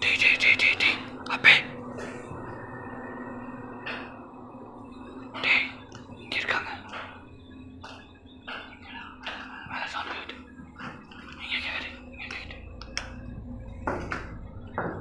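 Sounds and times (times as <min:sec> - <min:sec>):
hushed voices: 0:00.0 - 0:01.8
faint steady hum: 0:00.0 - 0:15.0.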